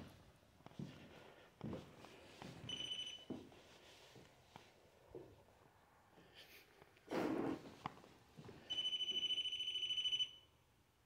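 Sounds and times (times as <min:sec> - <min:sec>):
footsteps on wooden floorboards: 0:00.0 - 0:03.6, 0:07.6 - 0:08.7.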